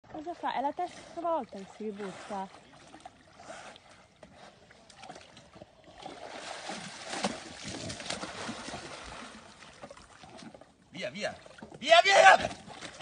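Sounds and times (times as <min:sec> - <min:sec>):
pool water sloshing and splashing: 0:00.0 - 0:13.0.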